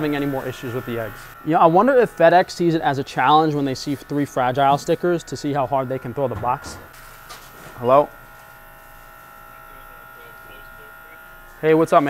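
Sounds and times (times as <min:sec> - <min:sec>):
machine hum with high whine: 0:00.0 - 0:12.0.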